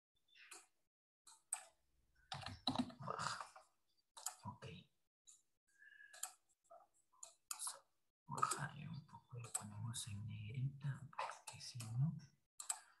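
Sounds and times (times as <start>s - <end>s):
faint keyboard typing and clicks: 1.3s - 3.6s, 8.4s - 13.0s.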